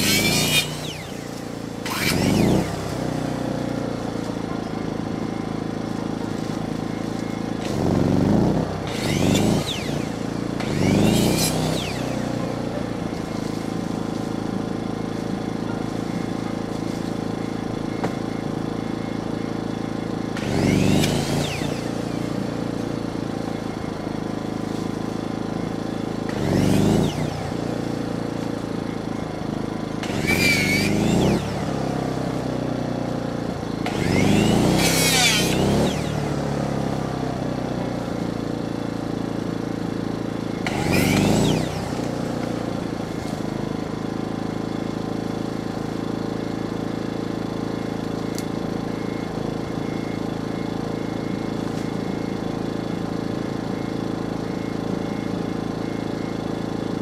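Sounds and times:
chainsaw idling and revving: 0.0s - 57.0s.

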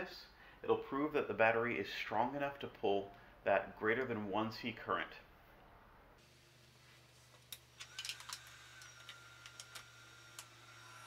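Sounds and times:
low electrical hum: 0.0s - 11.0s
plugs clicking and knocking: 7.4s - 10.6s.

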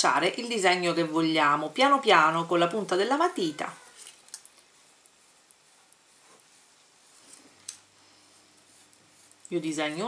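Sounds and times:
foil crinkling under pencil: 3.7s - 10.0s.

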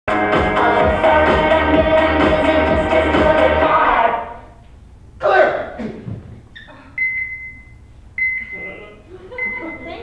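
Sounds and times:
heart monitor beep: 7.0s - 9.9s.

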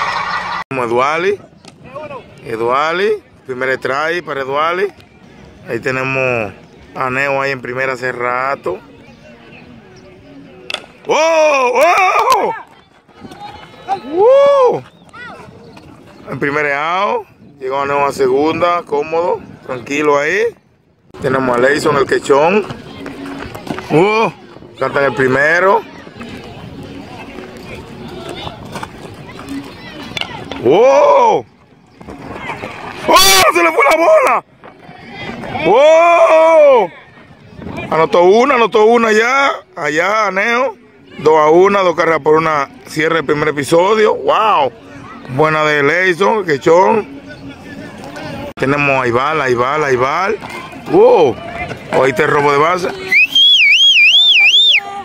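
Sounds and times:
outdoor murmur: 0.0s - 55.0s
loud wavering whistle: 53.1s - 54.8s.

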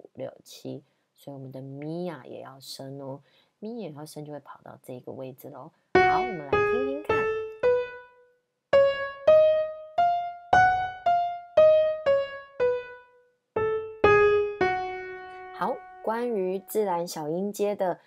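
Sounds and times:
piano keyboard playing a scale: 6.0s - 16.7s.

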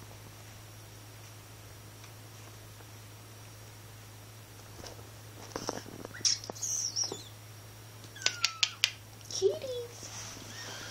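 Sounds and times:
kittens mewing: 8.1s - 9.0s.

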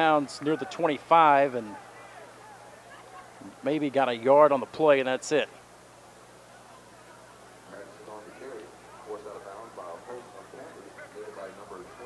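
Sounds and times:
indistinct chatter: 0.0s - 3.6s, 5.6s - 12.0s.

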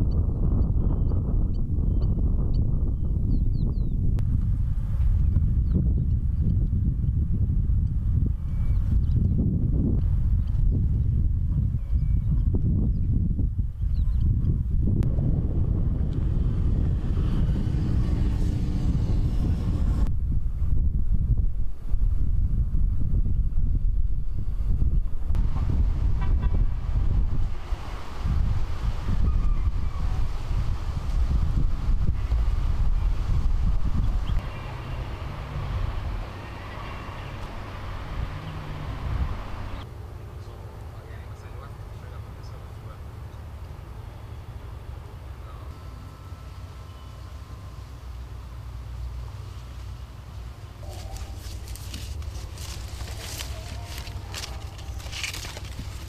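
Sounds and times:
wind buffeting microphone: 0.0s - 42.2s, 50.4s - 56.0s.

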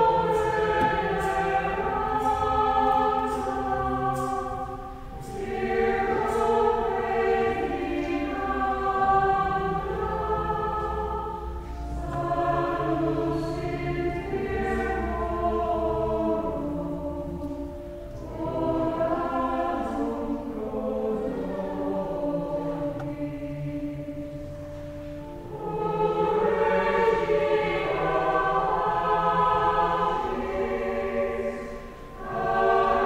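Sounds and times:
choir singing: 0.0s - 33.0s.

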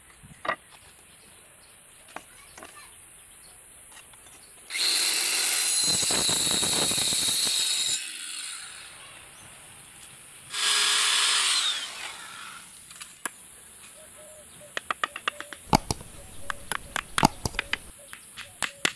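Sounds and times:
power tool cutting wood: 4.7s - 8.8s, 10.5s - 12.7s.

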